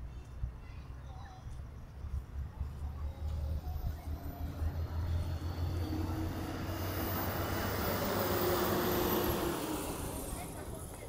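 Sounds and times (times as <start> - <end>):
road vehicle passing by: 2.3 - 11.0.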